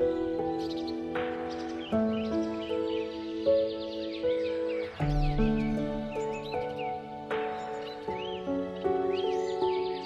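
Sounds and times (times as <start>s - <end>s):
relaxing background music: 0.0s - 10.0s.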